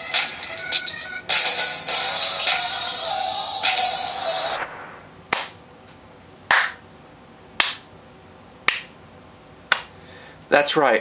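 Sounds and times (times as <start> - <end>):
hand claps: 5.3 - 5.6, 6.5 - 6.8, 7.6 - 7.9, 8.6 - 9.0, 9.7 - 9.9.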